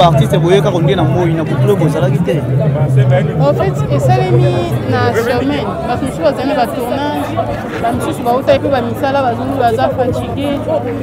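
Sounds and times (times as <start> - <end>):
people chattering: 0.0 - 11.0
woman talking into microphone: 3.4 - 7.3, 7.9 - 10.8.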